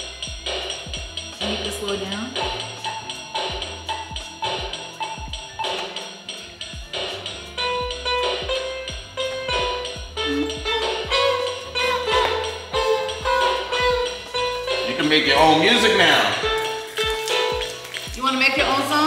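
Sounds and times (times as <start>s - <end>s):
electronic keyboard melody: 0.0s - 19.0s
toy keyboard drum rhythm: 0.0s - 19.0s.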